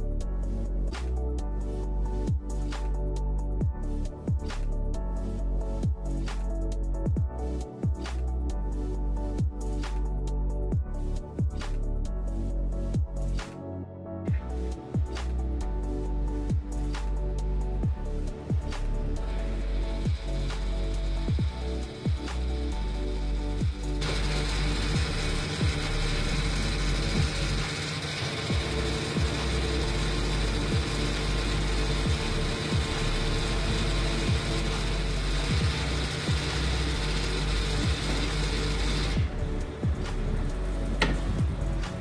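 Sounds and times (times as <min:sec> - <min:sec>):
background music: 0:00.0 - 0:42.0
robotic arm motors whirring: 0:18.7 - 0:42.0.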